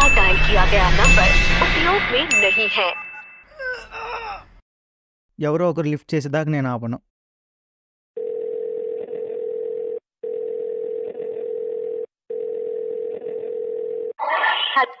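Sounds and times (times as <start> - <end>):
phone call tone: 8.2 - 14.2.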